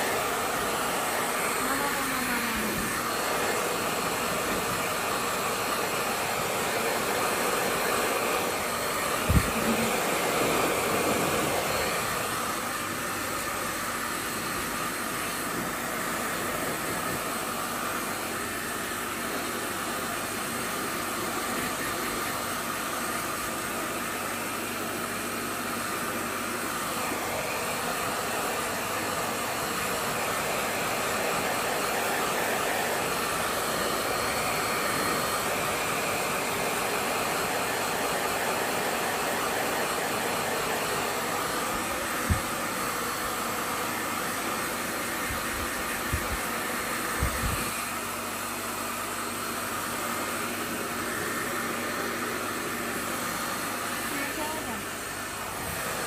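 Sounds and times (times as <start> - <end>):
hair dryer blowing: 0.0 - 56.0.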